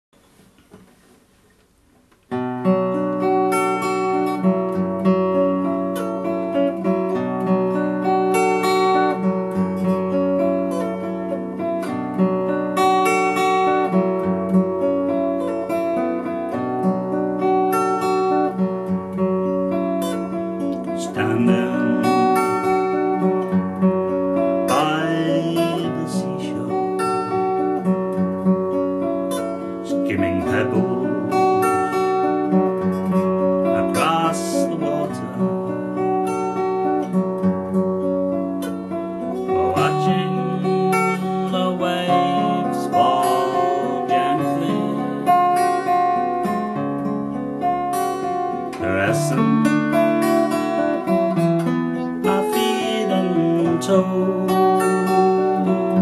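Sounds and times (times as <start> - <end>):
acoustic guitar fingerpicking: 0.2 - 56.0.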